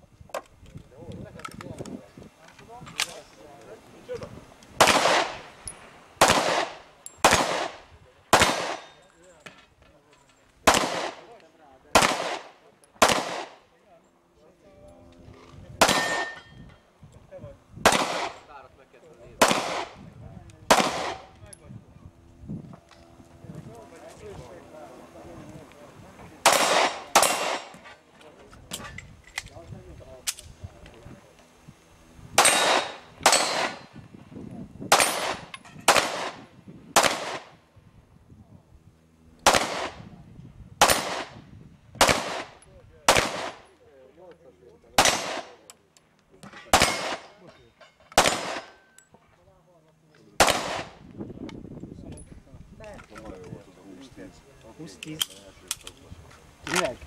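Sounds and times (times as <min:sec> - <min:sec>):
pistol shots: 0:04.8 - 0:05.5, 0:06.2 - 0:09.0, 0:10.6 - 0:11.3, 0:11.9 - 0:13.6, 0:15.8 - 0:16.4, 0:17.8 - 0:18.4, 0:19.4 - 0:20.0, 0:20.7 - 0:21.3, 0:26.4 - 0:27.8, 0:32.4 - 0:33.9, 0:34.9 - 0:37.5, 0:39.4 - 0:40.0, 0:40.8 - 0:41.4, 0:42.0 - 0:43.6, 0:45.0 - 0:45.6, 0:46.7 - 0:47.4, 0:48.2 - 0:48.8, 0:50.4 - 0:51.0.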